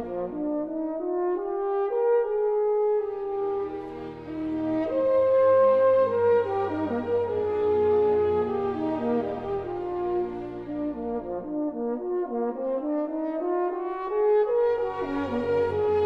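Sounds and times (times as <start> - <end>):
french horn solo: 0.0 - 16.0
orchestral accompaniment: 0.0 - 16.0.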